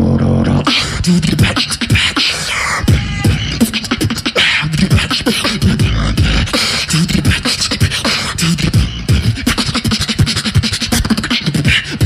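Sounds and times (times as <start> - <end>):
human beatboxing: 0.0 - 12.0.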